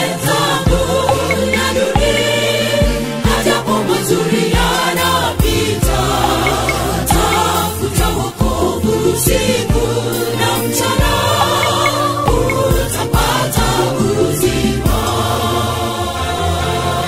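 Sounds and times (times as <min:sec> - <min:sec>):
women's gospel group singing: 0:00.0 - 0:17.0
backing music with drum beat: 0:00.7 - 0:15.2.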